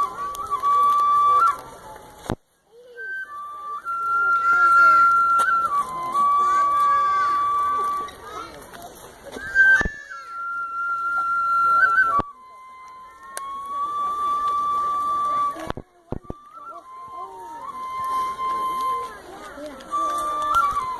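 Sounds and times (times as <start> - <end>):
faint crowd chatter: 0.0 - 20.9
solo flute long notes: 0.0 - 20.9.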